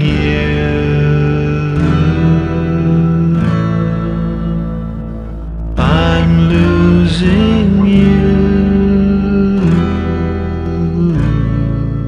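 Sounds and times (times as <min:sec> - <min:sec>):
guitar chords ringing: 0:00.0 - 0:12.0.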